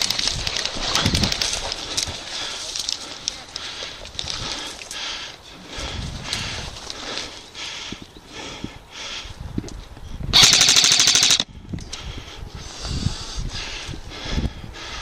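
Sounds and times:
footsteps through dry grass: 0.0s - 8.0s.

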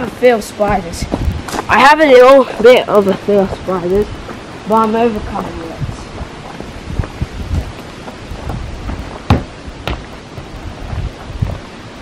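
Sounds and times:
wind noise on microphone: 0.0s - 12.0s
footsteps on bark chippings: 3.0s - 11.8s
sharp knocks: 8.9s - 10.1s.

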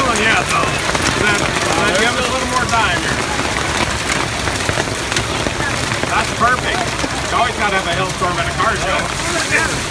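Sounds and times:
hail clattering on wet pavement: 0.0s - 9.9s.

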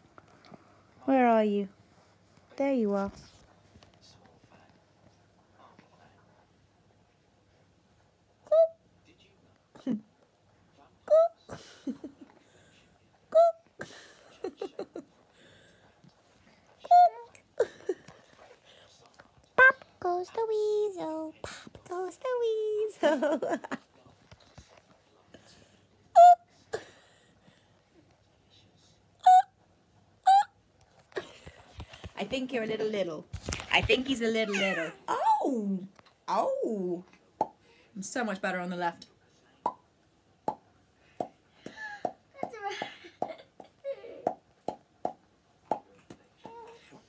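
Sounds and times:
baby cooing: 34.4s - 35.4s
hollow mouth pops: 40.5s - 41.4s.

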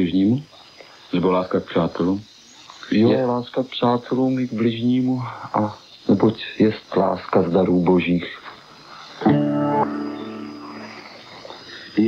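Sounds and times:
tape hiss: 0.0s - 12.0s
acoustic guitar chord ringing: 9.2s - 11.0s.

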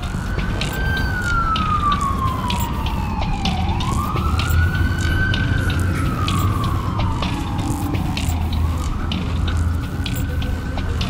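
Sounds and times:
scattered clicks: 0.0s - 11.0s
siren wailing: 0.0s - 11.0s.

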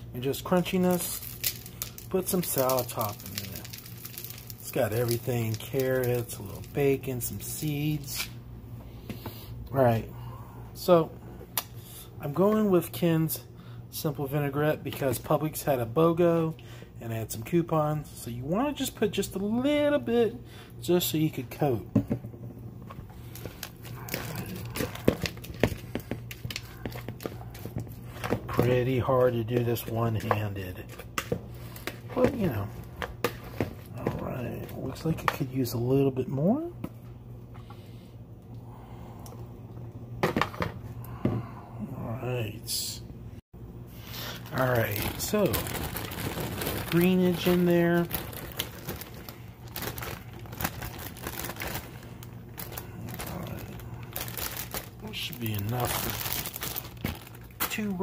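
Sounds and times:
steady low hum: 0.0s - 58.0s
plastic bag crinkling: 0.4s - 8.3s, 23.2s - 35.2s, 44.1s - 58.0s.

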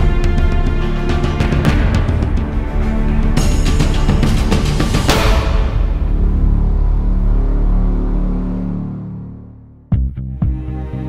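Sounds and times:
intro music with low drone: 0.0s - 11.0s.

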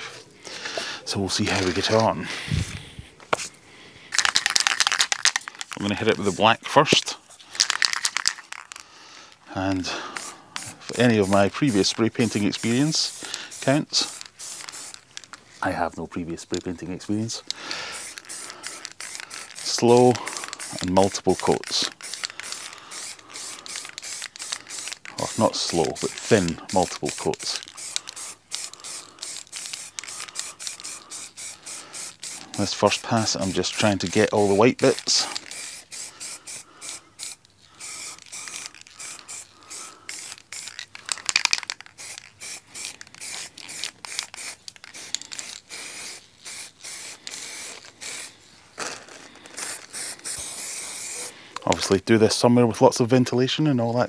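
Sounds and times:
spray paint can hissing: 4.1s - 6.4s, 7.5s - 8.8s, 9.9s - 15.3s, 17.9s - 51.9s.

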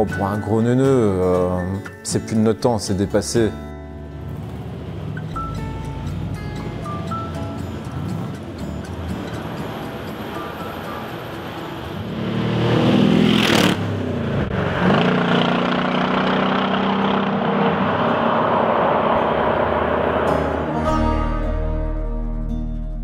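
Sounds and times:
car engine accelerating: 4.0s - 21.8s.

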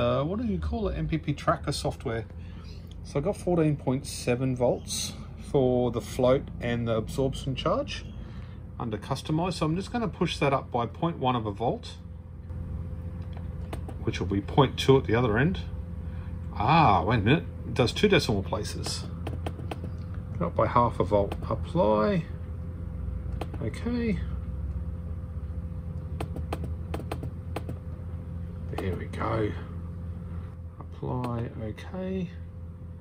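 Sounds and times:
low electrical hum: 0.0s - 33.0s
keyboard and mouse clicks: 23.3s - 23.6s, 26.2s - 27.8s.

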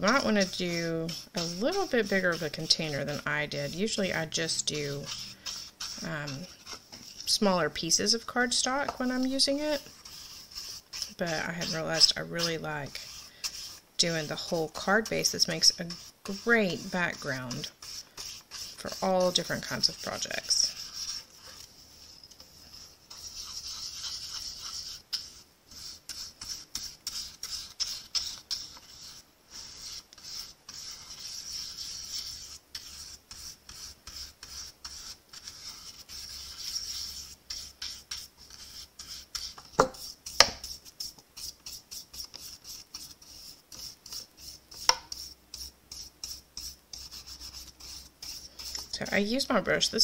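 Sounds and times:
paintbrush scrubbing on cardstock: 0.0s - 50.0s.

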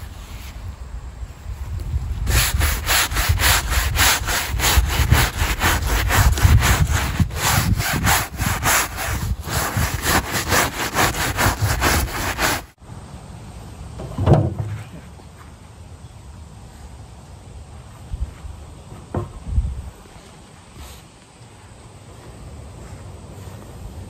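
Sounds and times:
brush scrubbing: 2.3s - 12.8s.

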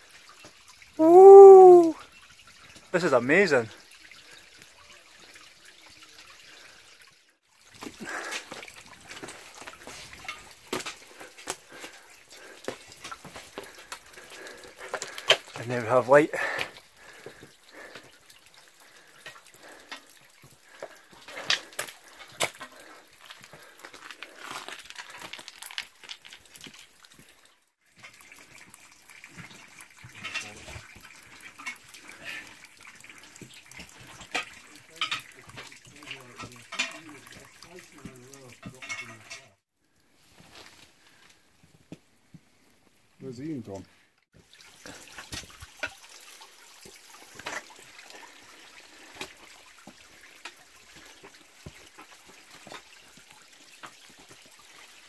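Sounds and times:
meltwater dripping and trickling: 0.0s - 55.0s.

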